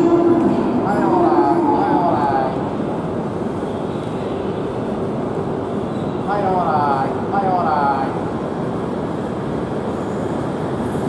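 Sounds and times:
voices: 0.0 - 2.9, 6.3 - 8.2
train running noise: 0.0 - 11.0.

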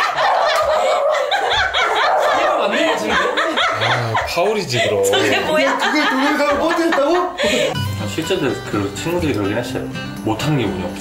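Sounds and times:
group of people laughing: 0.0 - 7.8.

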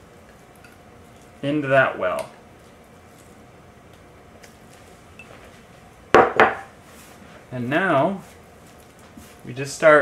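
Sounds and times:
glass bowl knocking on counter: 6.2 - 6.7.

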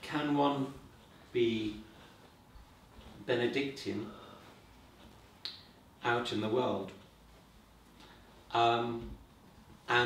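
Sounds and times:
man talking: 0.0 - 2.1, 3.1 - 4.5, 6.0 - 7.0, 8.5 - 9.2.

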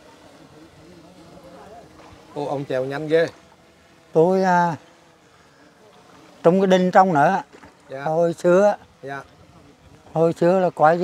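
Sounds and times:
quiet background voices: 0.0 - 4.1, 4.9 - 6.4, 8.8 - 10.2.

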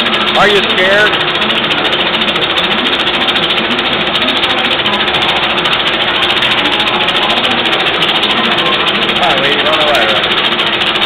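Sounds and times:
fast rattling clatter: 0.0 - 11.0.

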